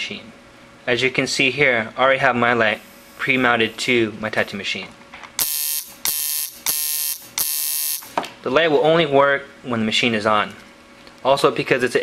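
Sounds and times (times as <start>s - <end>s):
tattoo machine buzzing: 5.4s - 8.1s.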